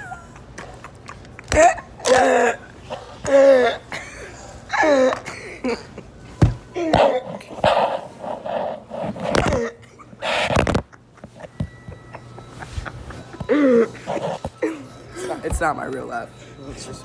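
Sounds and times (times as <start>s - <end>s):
boy laughing: 0.0s - 2.0s, 3.9s - 6.2s.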